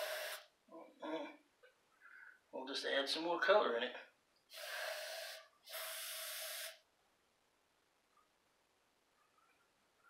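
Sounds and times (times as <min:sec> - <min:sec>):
aerosol spray can spraying: 0:00.0 - 0:00.5, 0:04.5 - 0:06.8.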